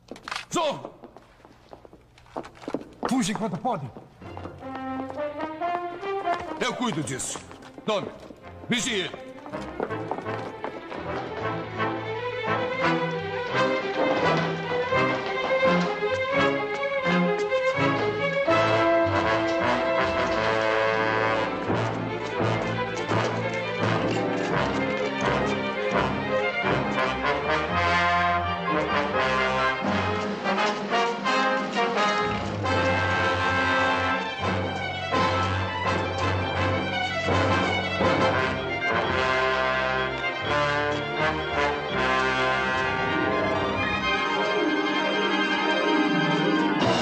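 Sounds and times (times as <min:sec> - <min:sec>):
dramatic orchestral music with brass: 0:04.6 - 0:07.5, 0:08.5 - 0:47.0.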